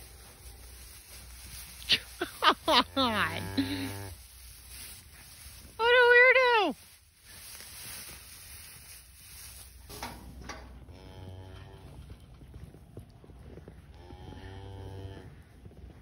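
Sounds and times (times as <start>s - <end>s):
cow mooing: 10.8s - 12.0s, 14.0s - 15.4s.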